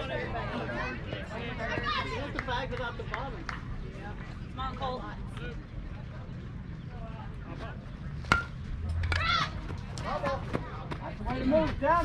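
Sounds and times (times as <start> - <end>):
bat hitting ball: 8.2 - 9.4.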